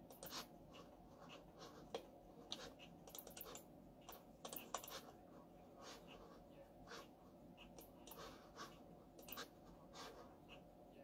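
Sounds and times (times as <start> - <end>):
computer mouse clicks: 1.9 - 5.1.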